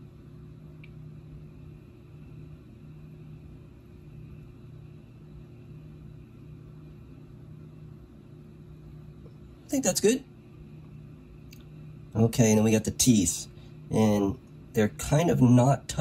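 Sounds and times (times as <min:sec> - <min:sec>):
low background hum: 0:00.0 - 0:16.0.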